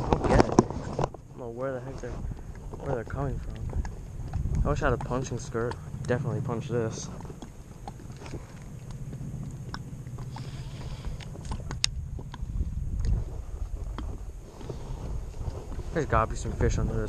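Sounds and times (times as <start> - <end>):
wind rumble on microphone: 0.0 - 17.0.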